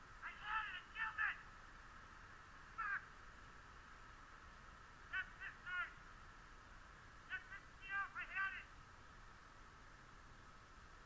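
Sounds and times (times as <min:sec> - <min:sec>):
bird cawing: 0:02.7 - 0:03.2.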